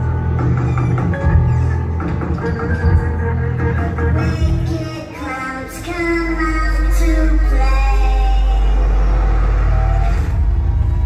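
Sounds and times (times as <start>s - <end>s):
loud music with bass drone: 0.0s - 11.0s
pulsing bass throb: 0.0s - 11.0s.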